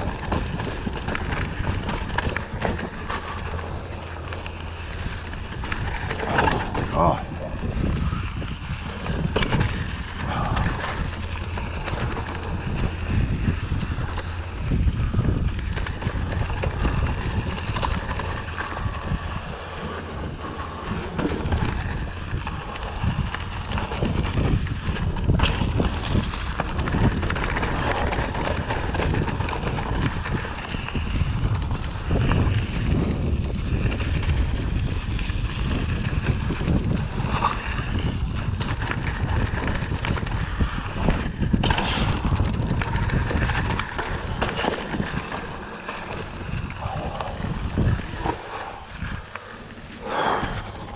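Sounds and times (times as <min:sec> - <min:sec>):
bike rattling over bumps: 0:00.0 - 0:50.9
bike tyres rolling on dirt: 0:00.0 - 0:50.9
wind buffeting microphone: 0:00.0 - 0:50.9.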